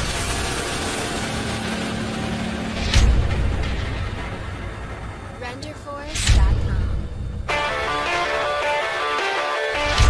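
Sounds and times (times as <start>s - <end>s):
rumbling hissing noise: 0.0s - 7.6s.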